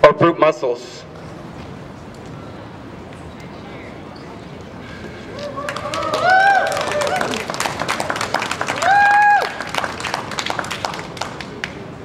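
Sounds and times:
high held whoops: 5.3s - 7.5s, 8.6s - 9.8s
audience clapping and cheering: 5.3s - 12.0s.

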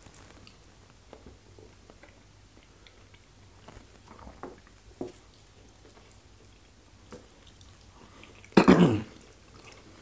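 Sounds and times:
chewing: 1.6s - 10.0s.

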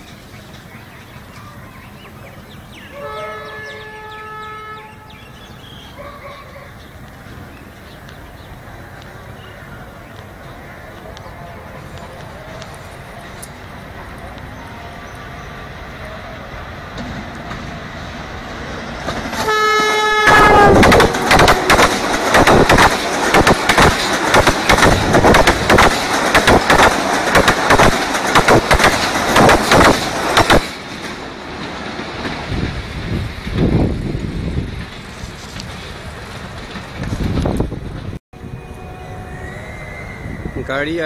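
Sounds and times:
train horn blast: 2.9s - 5.4s, 19.4s - 21.9s, 38.4s - 40.5s
train wheels clattering over rail joints: 16.8s - 38.2s.

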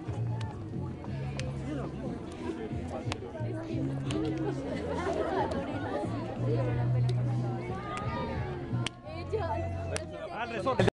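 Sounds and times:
students chattering: 0.0s - 10.9s.

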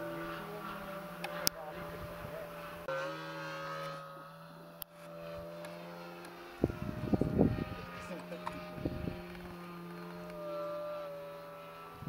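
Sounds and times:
model airplane motor droning: 0.0s - 12.0s.

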